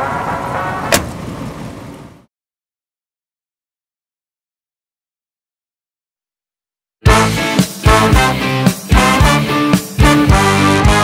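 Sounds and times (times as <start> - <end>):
steady outdoor noise: 0.0 - 2.3
car door slamming: 0.9 - 1.3.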